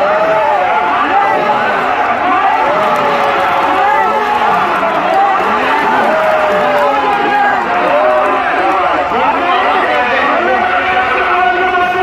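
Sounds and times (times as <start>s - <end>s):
crowd noise: 0.0s - 12.0s
man commentating over loudspeaker: 0.0s - 12.0s.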